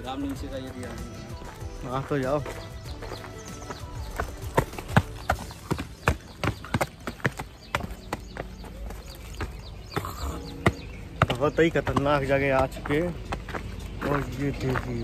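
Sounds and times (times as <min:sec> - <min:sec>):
faint background music: 0:00.0 - 0:15.0
footsteps on stony ground: 0:00.0 - 0:15.0.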